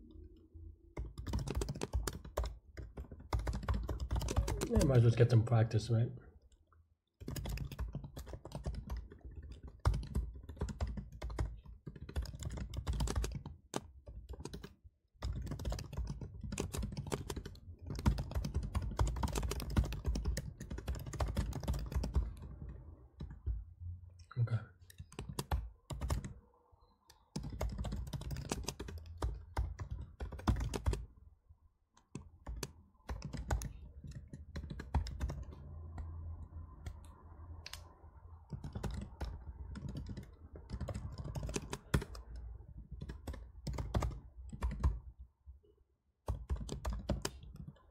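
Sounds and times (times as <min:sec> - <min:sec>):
typing on computer keyboard: 0:01.0 - 0:05.0, 0:07.2 - 0:23.5, 0:24.8 - 0:26.4, 0:27.1 - 0:31.1, 0:32.0 - 0:45.0, 0:46.3 - 0:47.8.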